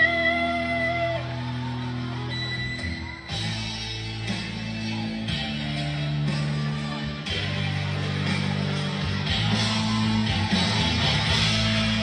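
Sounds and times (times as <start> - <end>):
guitar-led rock ballad backing track: 0.0 - 12.0.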